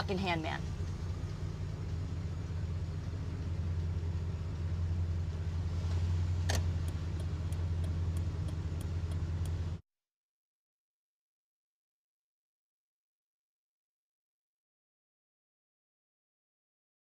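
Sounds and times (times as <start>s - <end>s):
car engine droning: 0.0s - 9.8s.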